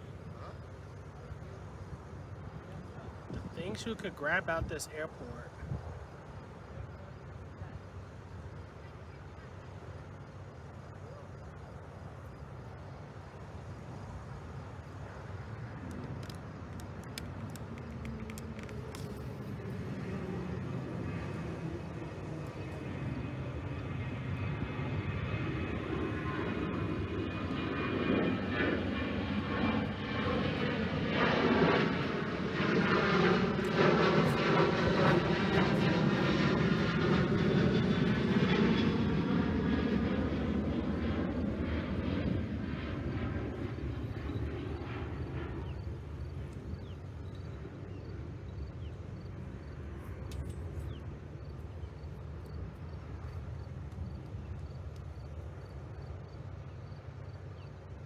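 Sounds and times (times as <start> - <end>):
airliner flying past: 0.0 - 58.0.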